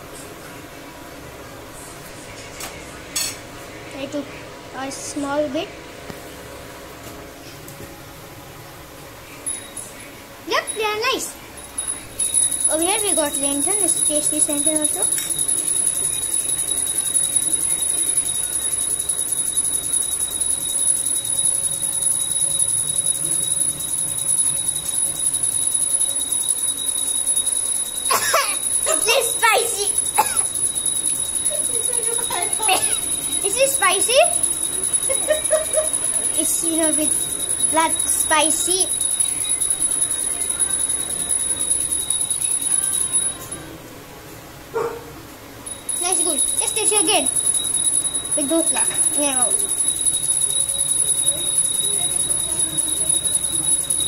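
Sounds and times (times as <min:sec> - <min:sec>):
high-pitched two-tone whine: 0:08.8 - 0:44.1, 0:45.6 - 0:54.0.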